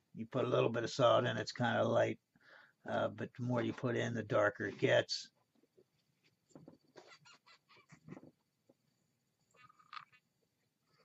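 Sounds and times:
brief squeak: 6.8 - 8.3.

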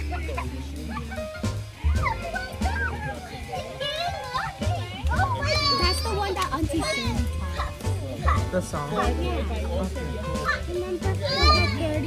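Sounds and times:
children calling out: 0.0 - 12.0
children squealing: 0.0 - 12.0.

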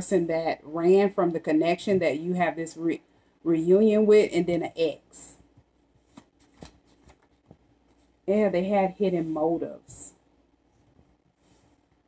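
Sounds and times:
cards being shuffled: 6.0 - 8.2.

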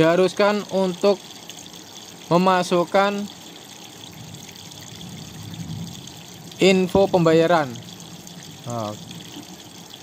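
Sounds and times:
man saying eh: 8.7 - 9.0.

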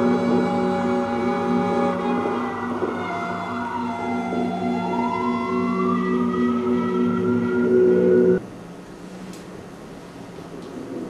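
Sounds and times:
low held tones: 0.0 - 8.4.

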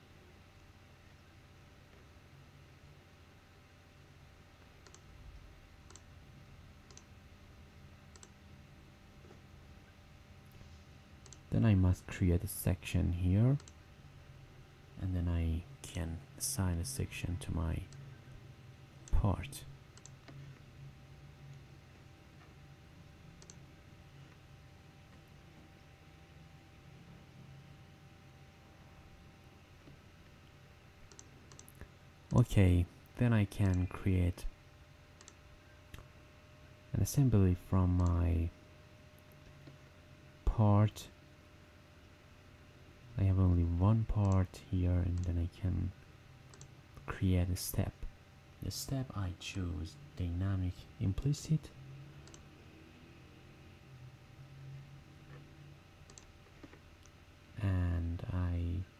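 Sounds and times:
faint electrical hum: 0.0 - 58.9
computer mouse clicks: 4.6 - 5.1, 5.8 - 6.1, 6.8 - 7.1, 8.1 - 8.4, 11.2 - 11.5, 13.6 - 13.8, 19.9 - 20.4, 23.4 - 23.6, 31.0 - 32.4, 33.6 - 33.8, 35.2 - 36.1, 45.1 - 45.4, 46.5 - 46.7, 52.2 - 52.5, 56.1 - 57.2.

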